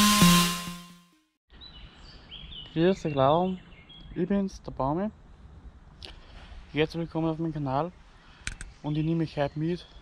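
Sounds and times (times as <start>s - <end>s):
electronic music: 0.0s - 1.0s.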